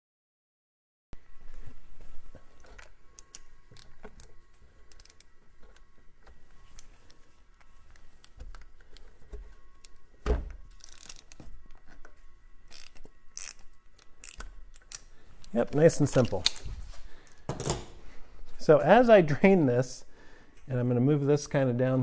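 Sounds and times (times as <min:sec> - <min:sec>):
filter wrench clicking and scraping: 0:10.8 - 0:11.4, 0:12.7 - 0:16.6.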